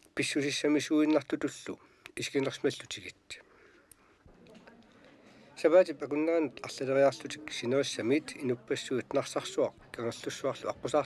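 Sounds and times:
faint background hiss: 0.0 - 11.0
person speaking: 0.2 - 11.0.

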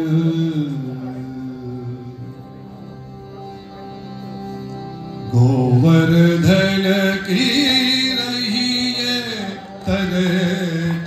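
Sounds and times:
mantra chanting: 0.0 - 2.8, 5.3 - 11.0.

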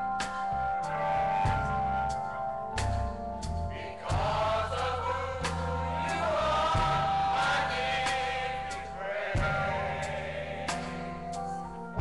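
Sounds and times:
church choir singing gospel: 0.0 - 12.0
instrumental accompaniment: 0.0 - 12.0.

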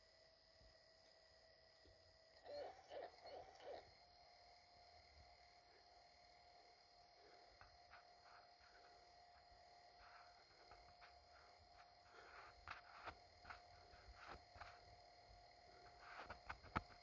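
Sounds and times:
faint high hum: 0.0 - 17.0.

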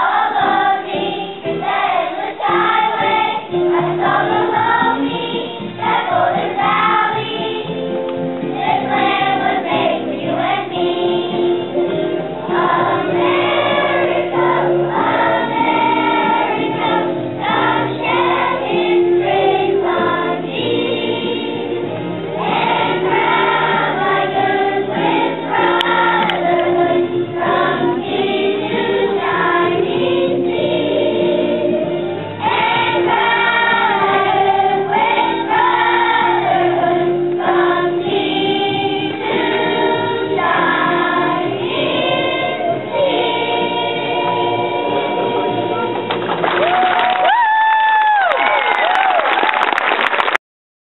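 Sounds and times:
children's choir singing: 0.0 - 46.3.

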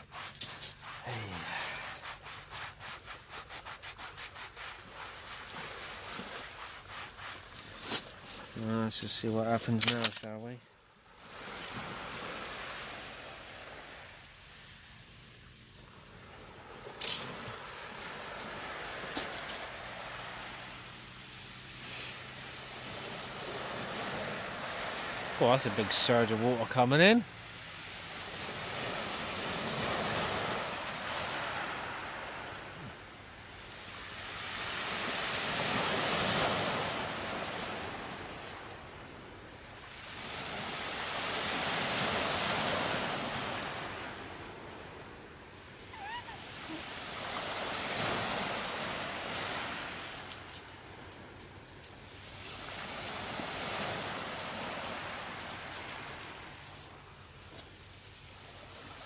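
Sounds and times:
sea waves washing ashore: 0.0 - 59.0.

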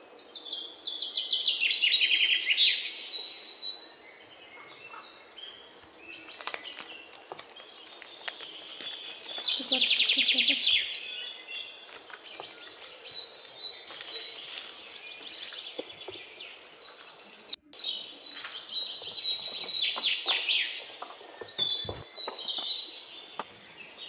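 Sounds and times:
small birds chirping and trilling: 0.0 - 24.0.

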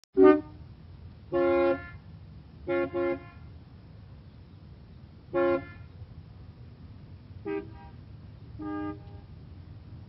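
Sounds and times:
car horns honking: 0.2 - 0.6, 1.3 - 2.0, 2.6 - 3.6, 5.3 - 5.9, 7.4 - 8.0, 8.6 - 9.4
low steady rumble: 0.2 - 10.0.

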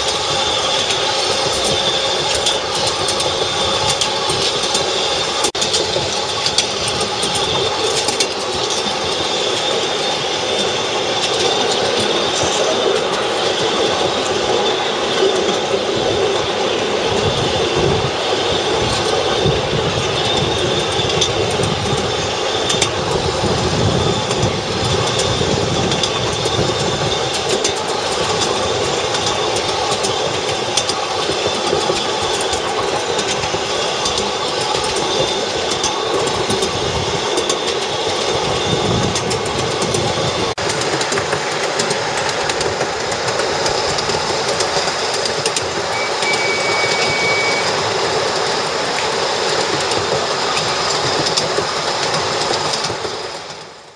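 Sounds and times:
miniature train running on track: 0.0 - 53.9
wheels clicking over rail joints: 0.0 - 53.9.

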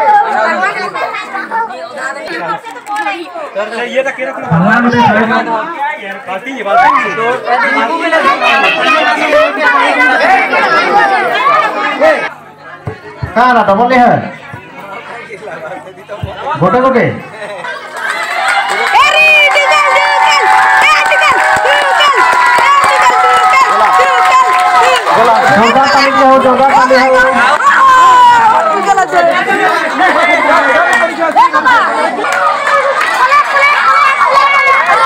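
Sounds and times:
crowd of children chattering: 0.0 - 35.0
man speaking into a microphone: 3.8 - 7.4, 25.2 - 27.5.

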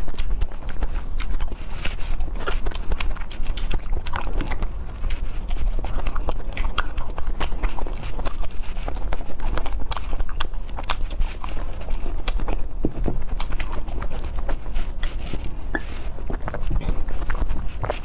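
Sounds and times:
chewing gummy candy: 0.0 - 18.0.

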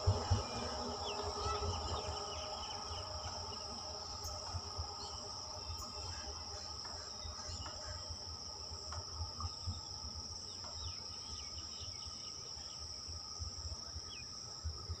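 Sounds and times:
insects trilling: 0.0 - 15.0.

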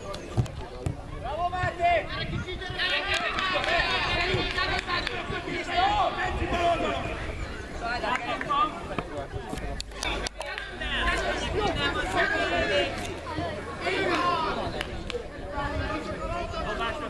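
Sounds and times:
people shouting and calling: 1.1 - 8.8.

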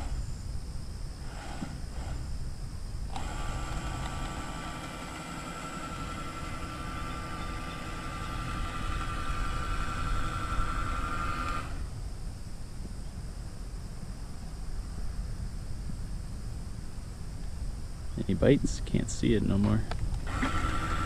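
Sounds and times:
small electric motor whining: 1.2 - 2.3, 3.1 - 11.9, 20.2 - 21.0
wind rumble on microphone: 11.7 - 20.4.

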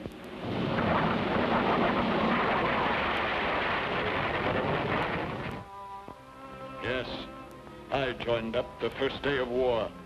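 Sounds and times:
steady rushing noise: 0.0 - 6.8.

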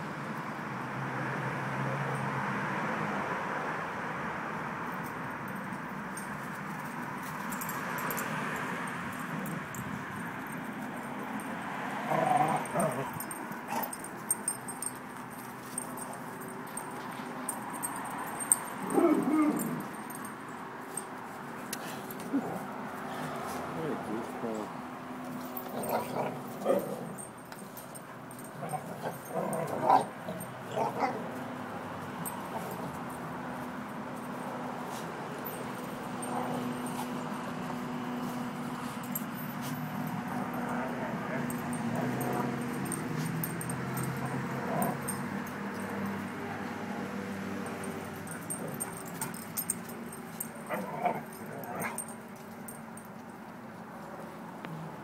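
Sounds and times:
dogs low vocalising: 18.8 - 20.0.

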